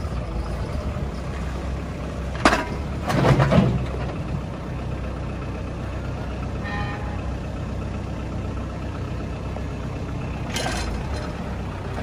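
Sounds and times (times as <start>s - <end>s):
diesel engine idling: 0.0s - 12.0s
engine whine: 0.0s - 12.0s.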